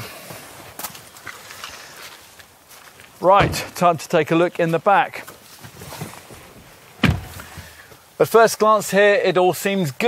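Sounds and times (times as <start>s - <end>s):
footsteps on gravel: 0.2s - 6.4s.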